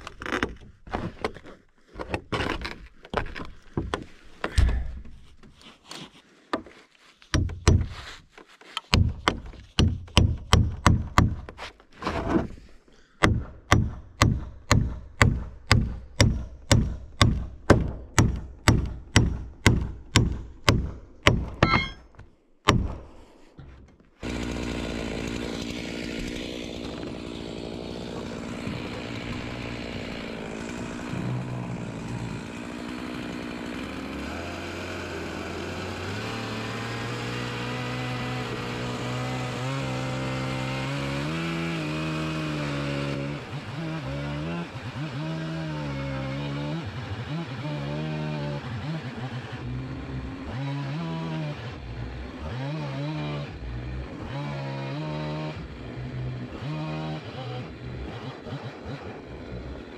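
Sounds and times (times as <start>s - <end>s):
chainsaw cutting wood: 12.2s - 22.0s, 22.7s - 59.9s.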